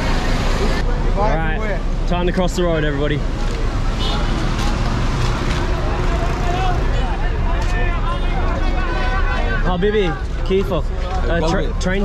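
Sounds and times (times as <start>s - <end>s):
traffic engines rumbling: 0.0s - 12.0s
people talking: 5.6s - 12.0s.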